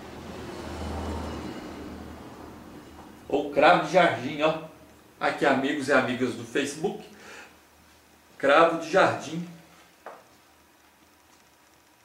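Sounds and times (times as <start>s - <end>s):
faint steady hiss: 2.7s - 12.0s.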